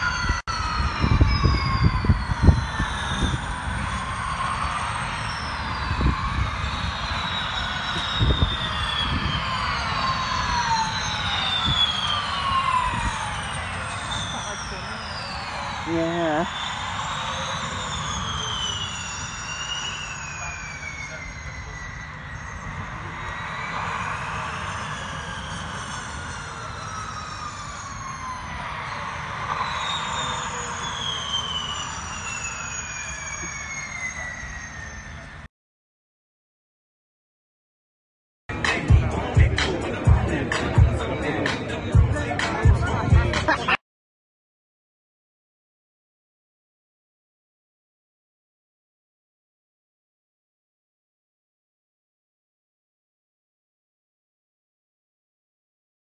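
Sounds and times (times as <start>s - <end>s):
electric race cars whining past: 0.0s - 35.5s.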